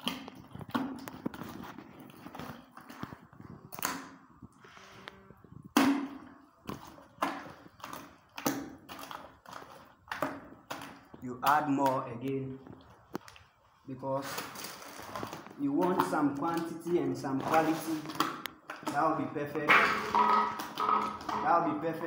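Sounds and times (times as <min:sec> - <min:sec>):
hand stirring wet slurry: 0:00.0 - 0:05.0, 0:06.1 - 0:22.0.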